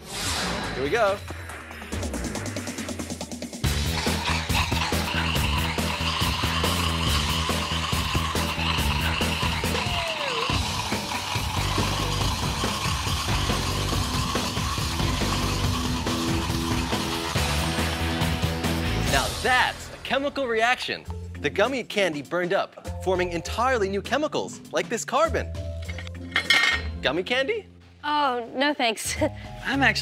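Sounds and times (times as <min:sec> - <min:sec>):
background music: 0:00.0 - 0:30.0
candy burning with hissing roar: 0:03.6 - 0:19.6.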